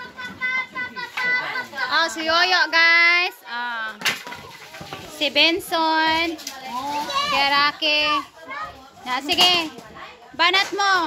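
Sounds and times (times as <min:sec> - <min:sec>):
kids chattering and calling out: 0:00.0 - 0:11.0.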